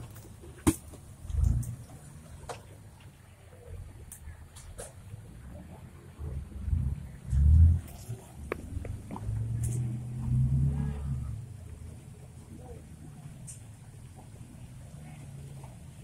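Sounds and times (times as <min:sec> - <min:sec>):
engine revving: 0:06.2 - 0:11.6.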